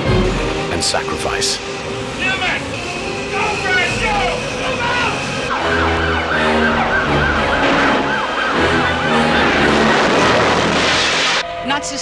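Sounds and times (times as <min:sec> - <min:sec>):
film soundtrack music: 0:00.0 - 0:12.0
ambulance siren wailing: 0:00.2 - 0:11.8.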